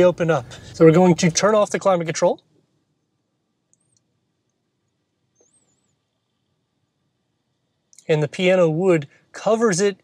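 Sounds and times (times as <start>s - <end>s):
faint high-pitched chirps: 2.9s - 8.1s.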